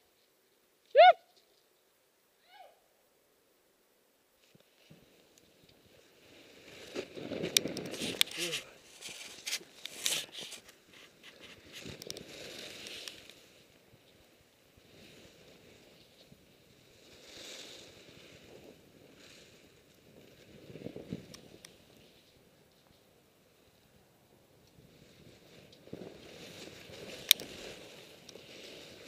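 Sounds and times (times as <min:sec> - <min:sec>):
skis swishing through powder snow: 0:04.4 - 0:22.5, 0:24.8 - 0:29.0.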